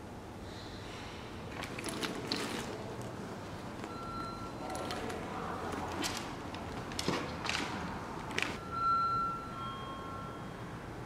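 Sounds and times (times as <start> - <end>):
two-note electronic chime: 8.6 - 10.8.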